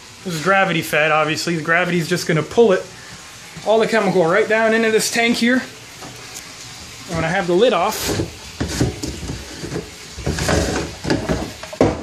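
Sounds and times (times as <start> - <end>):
plastic lid scraping and knocking: 8.0 - 12.0.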